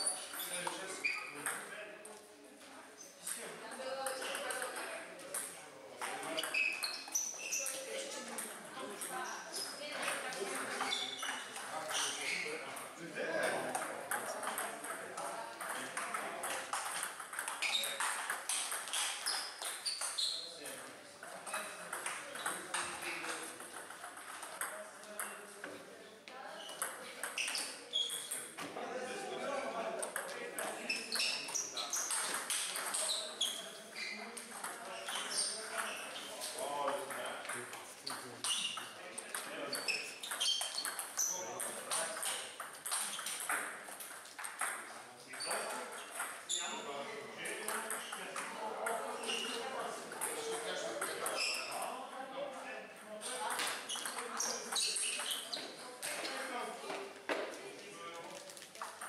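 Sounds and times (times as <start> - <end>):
table tennis ball clicking: 15.6 - 20.2.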